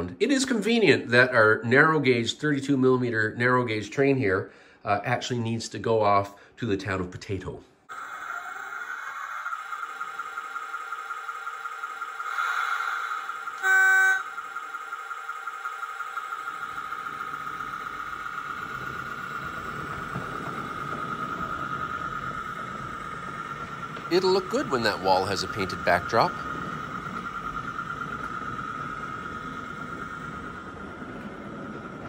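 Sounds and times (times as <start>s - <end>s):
model locomotive whine: 7.9s - 32.0s
locomotive toot: 12.1s - 15.1s, 16.4s - 32.0s
low rumble: 16.6s - 32.0s.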